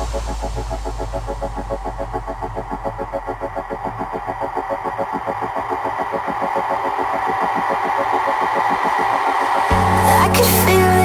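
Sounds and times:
rising noise sweep: 0:00.0 - 0:10.9
heavy bass and beat: 0:00.0 - 0:11.0.

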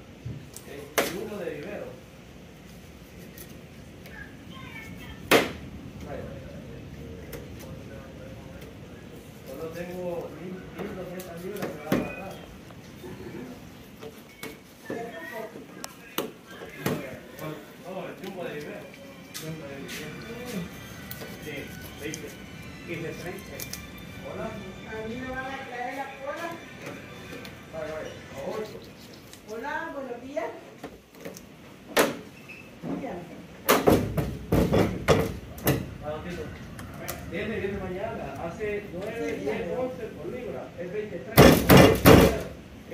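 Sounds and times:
background chatter: 0:00.4 - 0:31.4, 0:32.4 - 0:42.9.

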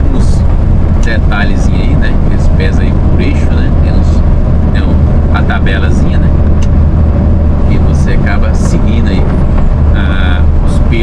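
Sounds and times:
man speaking: 0:00.0 - 0:00.4, 0:01.0 - 0:04.2, 0:04.8 - 0:06.4, 0:07.7 - 0:11.0
road noise: 0:00.0 - 0:11.0
truck diesel engine drone: 0:00.0 - 0:11.0.

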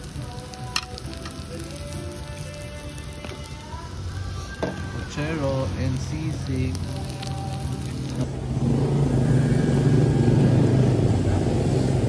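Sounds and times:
food sizzling on hot plate: 0:00.0 - 0:10.9.

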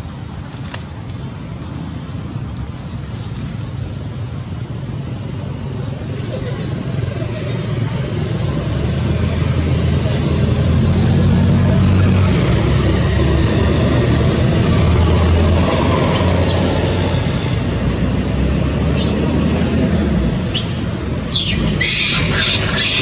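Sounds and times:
steady low rumbling: 0:09.2 - 0:17.8.

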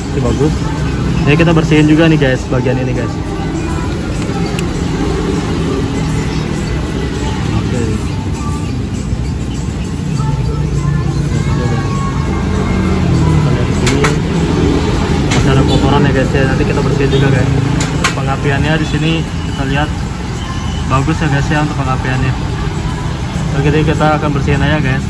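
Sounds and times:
vehicle engines passing: 0:00.0 - 0:25.0.

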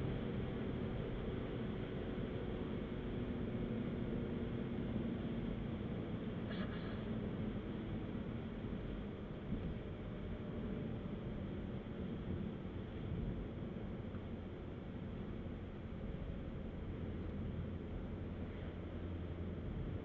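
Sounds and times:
car engine drone inside cabin: 0:00.0 - 0:20.0.

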